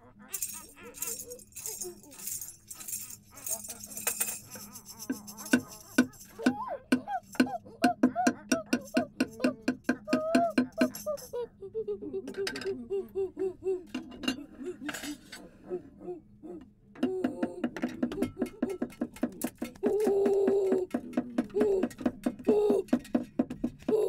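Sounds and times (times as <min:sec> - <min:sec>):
hooting voice sounds: 0:00.0 - 0:18.8
rattle shaking: 0:00.3 - 0:11.4, 0:17.8 - 0:23.9
sharp clicks and clacks: 0:17.8 - 0:23.9.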